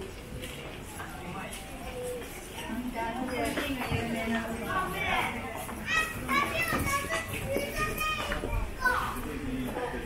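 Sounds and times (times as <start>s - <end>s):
children calling out and chattering: 0.0s - 10.0s.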